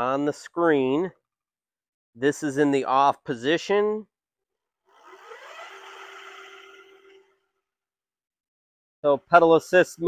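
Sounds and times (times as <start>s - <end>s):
electric motor whirring: 4.9s - 7.4s.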